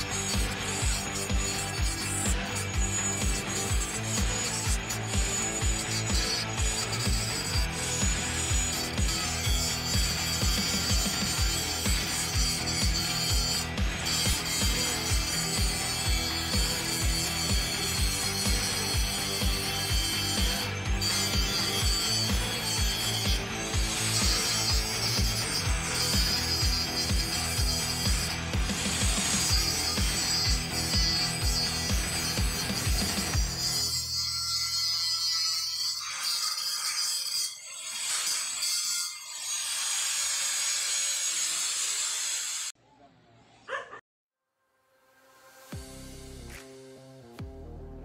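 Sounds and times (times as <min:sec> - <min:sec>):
background music with beat: 0:00.0 - 0:33.5, 0:45.5 - 0:48.0
angle grinder grinding steel: 0:00.0 - 0:42.8.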